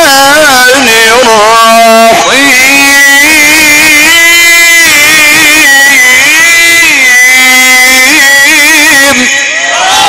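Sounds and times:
man reciting melodically: 0:00.0 - 0:09.6.

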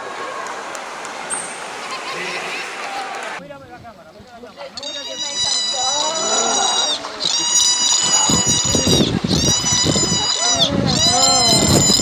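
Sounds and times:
dolphin squealing whistles: 0:04.8 - 0:12.0
water splashing: 0:04.8 - 0:12.0
people shouting: 0:04.9 - 0:07.0, 0:10.2 - 0:11.7.

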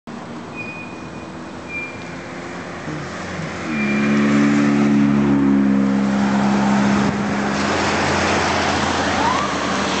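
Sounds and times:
traffic tyre and engine noise: 0:00.1 - 0:10.0
vehicle horn: 0:03.6 - 0:05.0.

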